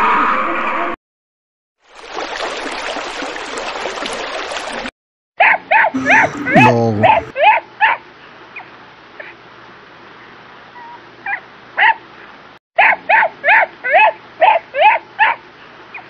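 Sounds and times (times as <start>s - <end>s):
puppy yipping: 5.4s - 5.9s, 10.8s - 12.0s.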